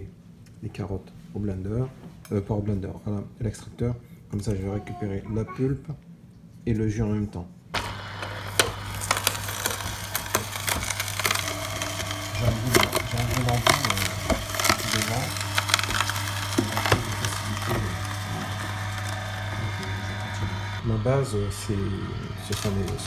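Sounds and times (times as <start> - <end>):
carrots cracking and crunching: 7.8 - 20.8
juicer motor hum: 7.8 - 23.0.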